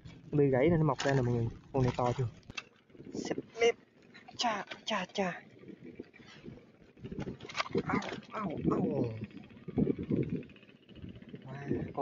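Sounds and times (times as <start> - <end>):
person's low voice murmuring: 7.8 - 12.0.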